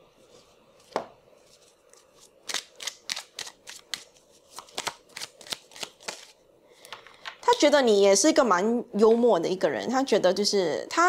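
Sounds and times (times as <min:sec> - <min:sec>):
cards being shuffled: 0:00.8 - 0:07.4.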